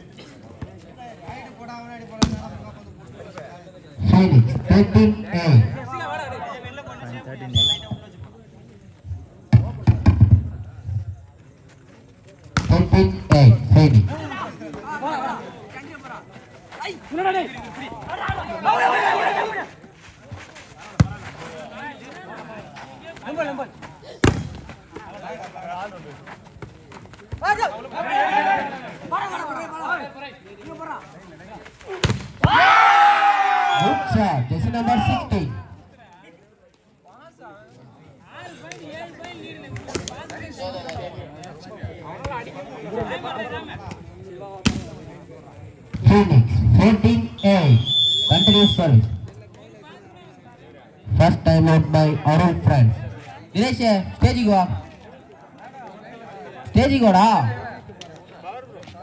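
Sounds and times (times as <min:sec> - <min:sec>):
chatter of people: 0:00.0 - 0:59.0
high whistle tone: 0:07.5 - 0:08.0, 0:47.3 - 0:48.8
volleyball smack: 0:24.2 - 0:24.6, 0:32.0 - 0:32.6, 0:44.6 - 0:45.0.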